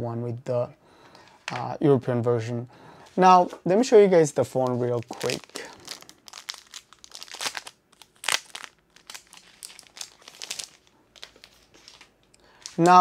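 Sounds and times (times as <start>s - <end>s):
wrapping crinkling: 4.5s - 13.0s.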